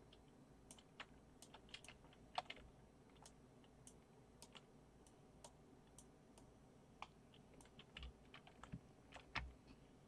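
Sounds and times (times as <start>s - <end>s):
keyboard keys clicking: 0.1s - 4.7s.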